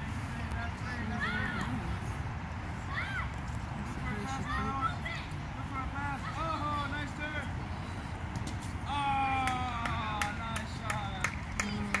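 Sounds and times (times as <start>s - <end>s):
voices calling: 0.0s - 12.0s.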